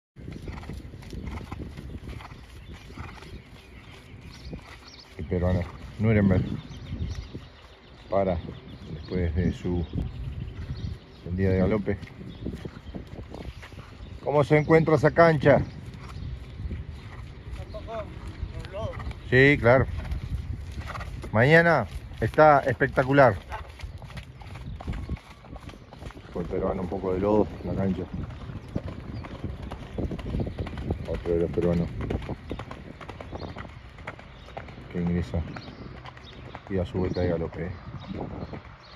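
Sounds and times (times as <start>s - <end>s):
horse hoofbeats on muddy track: 0.2s - 38.9s.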